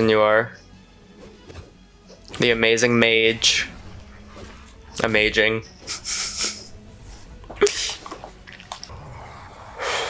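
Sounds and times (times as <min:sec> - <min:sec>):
man snorting laughs through nose: 0:05.9 - 0:06.7.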